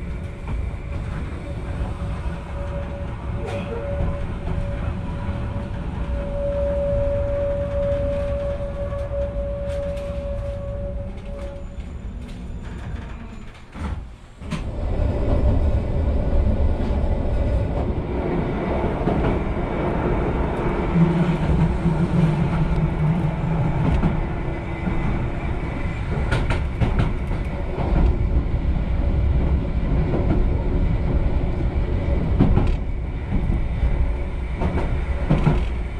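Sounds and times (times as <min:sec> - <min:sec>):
electric train rumble from inside: 0:00.0 - 0:35.9.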